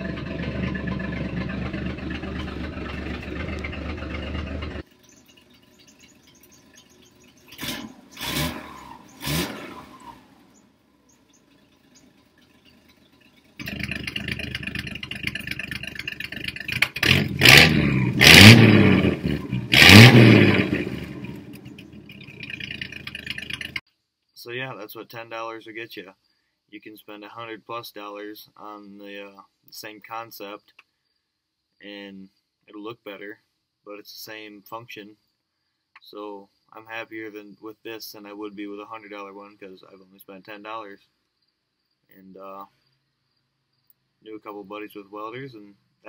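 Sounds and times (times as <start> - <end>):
clatters: 0.0 - 8.2, 11.1 - 17.5, 19.4 - 23.8
engine idling and revving: 0.0 - 23.8.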